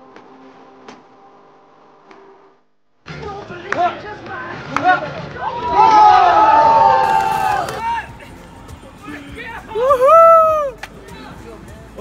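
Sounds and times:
street noise: 0.0s - 12.0s
crowd cheering: 4.8s - 8.2s.

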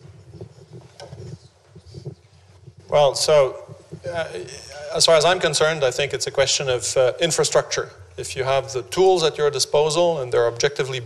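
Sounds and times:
microphone handling rumbles: 0.0s - 4.6s
man speaking loudly: 2.9s - 11.0s.

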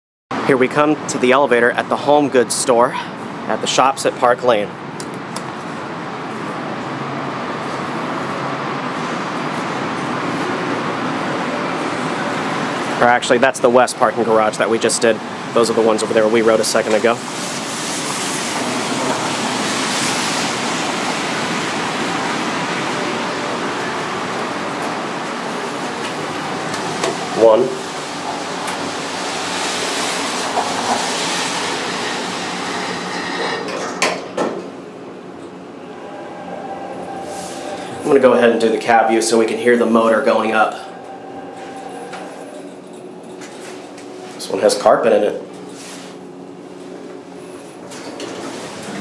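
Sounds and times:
steady outdoor rushing noise: 0.4s - 49.0s
elevator pump motor humming: 20.5s - 49.0s.

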